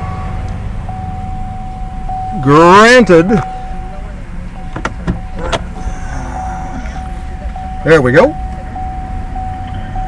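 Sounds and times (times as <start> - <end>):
car cabin rumble: 0.0 - 10.0
faint steady tone: 0.0 - 10.0.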